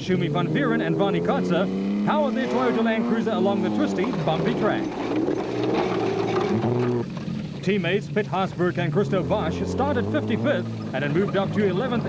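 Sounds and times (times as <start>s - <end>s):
truck engine driving past: 0.0s - 12.0s.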